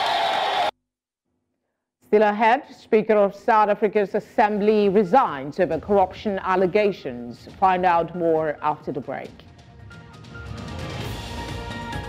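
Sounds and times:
crowd cheering and shouting: 0.0 - 0.7.

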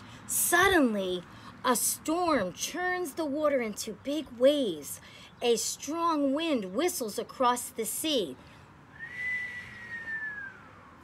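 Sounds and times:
woman whistling: 8.9 - 10.7.

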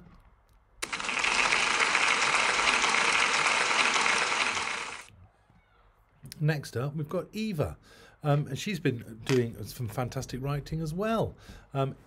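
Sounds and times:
people clapping: 0.8 - 5.1.

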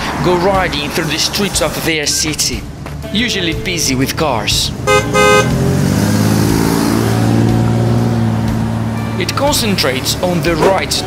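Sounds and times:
short high horn toot: 4.9 - 5.6.

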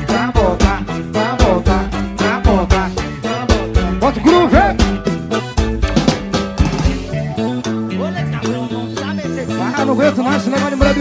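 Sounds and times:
guitar line over bass: 0.0 - 11.0.

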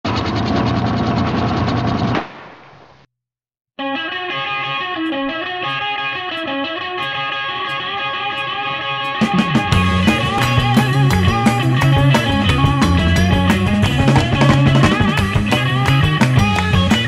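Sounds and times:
rock music: 3.8 - 17.0.

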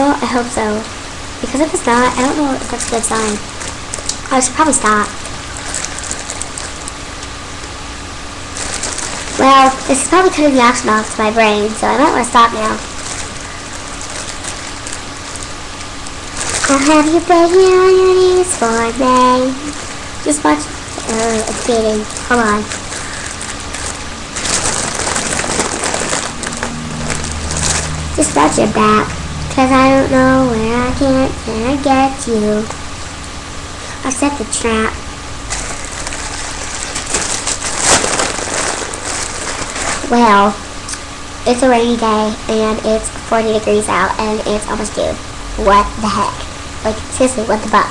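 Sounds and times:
steady hiss: 0.0 - 47.9
foil crinkling: 1.4 - 29.0, 35.4 - 40.6.

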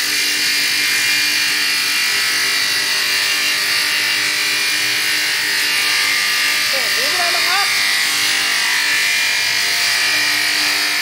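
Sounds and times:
woodworking machine whining: 0.0 - 11.0.

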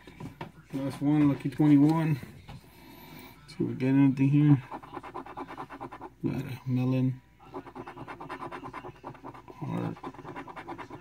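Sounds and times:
coin scratching lottery ticket: 4.6 - 6.1, 7.5 - 11.0.

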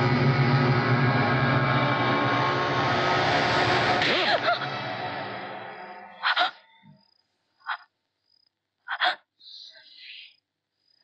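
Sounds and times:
crickets chirring: 5.6 - 11.0.

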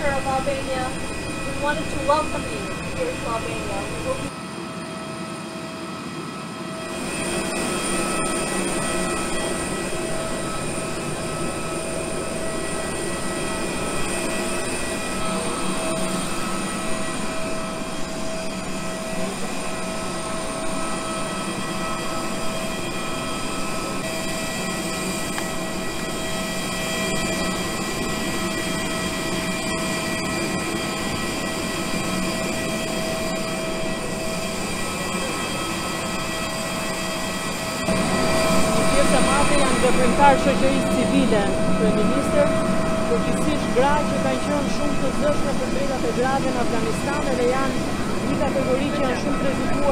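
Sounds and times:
jet turbine whine: 0.0 - 49.9.

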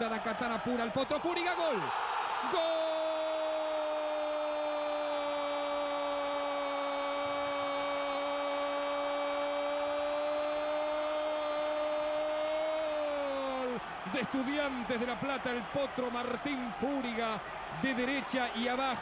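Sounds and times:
sports commentator's held goal cry: 0.4 - 19.0.

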